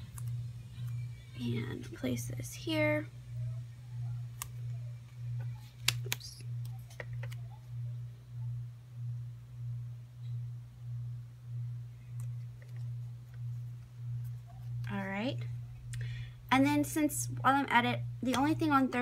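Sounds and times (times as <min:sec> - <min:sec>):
pulsing low hum: 0:00.0 - 0:19.0
paper sticker clicks and taps: 0:06.9 - 0:07.4.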